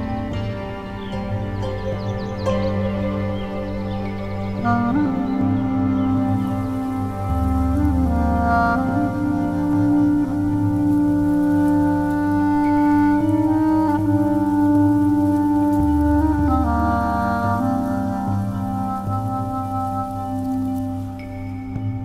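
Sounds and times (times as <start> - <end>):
slow calm flute music: 0.0 - 22.0.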